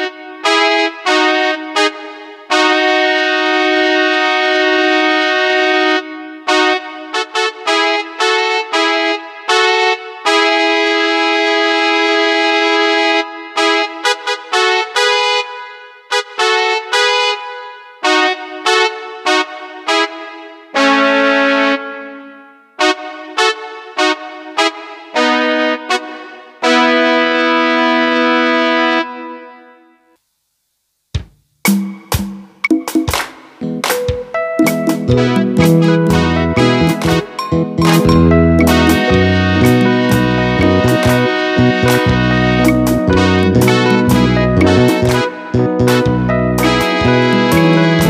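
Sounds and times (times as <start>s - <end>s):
keyboard brass-like chords: 0.0s - 30.2s, 32.7s - 48.0s
electronic keyboard chords: 32.7s - 48.0s.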